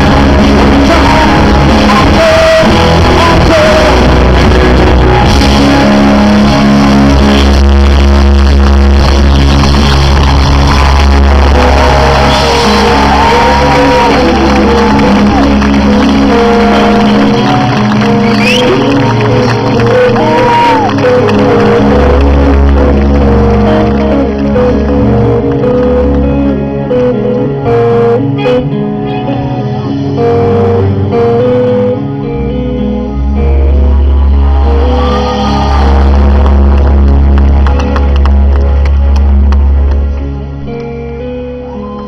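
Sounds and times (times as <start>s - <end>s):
deep bass: 0.0s - 42.0s
live band playing: 0.0s - 42.0s.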